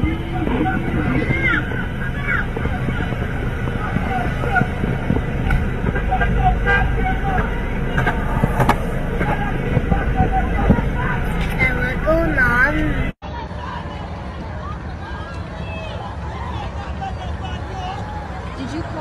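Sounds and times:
bus engine idling: 0.0s - 19.0s
people shouting: 0.0s - 19.0s
road traffic: 0.0s - 19.0s.

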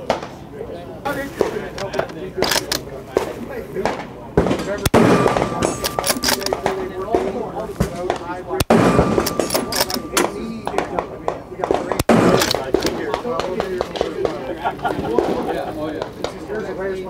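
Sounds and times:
voices: 0.0s - 17.0s
rifle shots: 1.4s - 14.4s.

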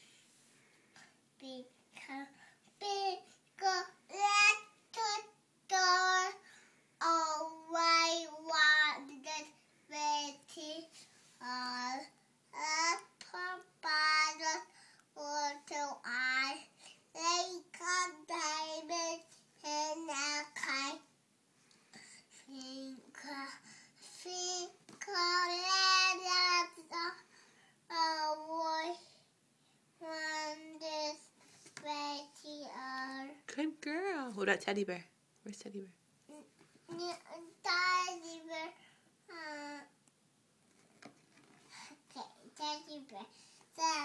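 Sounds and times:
toddler singing wordlessly: 1.4s - 6.4s, 7.0s - 21.1s, 22.4s - 27.3s, 27.9s - 29.2s, 30.0s - 33.4s, 36.3s - 40.0s, 42.1s - 44.0s.

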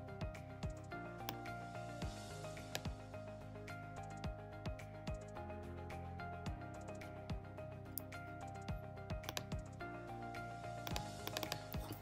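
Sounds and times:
background music: 0.0s - 12.0s
keyboard and mouse clicks: 9.2s - 9.8s, 10.8s - 12.0s.

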